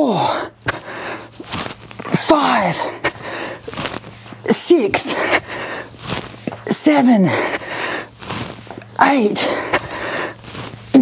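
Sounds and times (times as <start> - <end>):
man breathing hard: 0.0 - 10.9.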